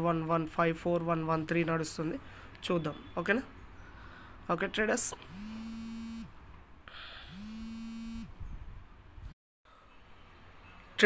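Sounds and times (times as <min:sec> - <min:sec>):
smartphone vibrating: 0:05.2 - 0:06.4, 0:07.1 - 0:08.4.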